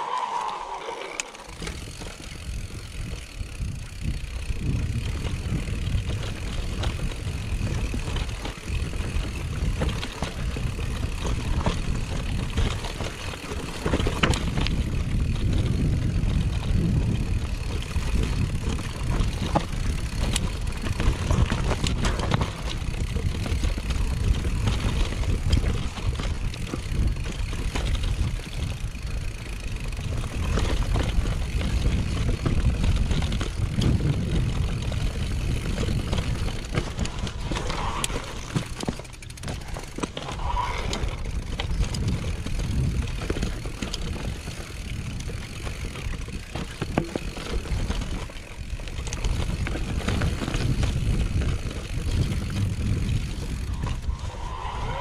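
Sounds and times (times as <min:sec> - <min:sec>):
bike clicks and rattles: 0:00.0 - 0:55.0
rumble of wind and tyres: 0:00.0 - 0:55.0.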